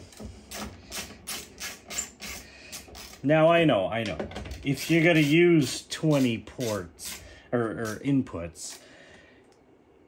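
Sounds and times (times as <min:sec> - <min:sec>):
screwdriver rasping into metal: 0:04.6 - 0:08.0.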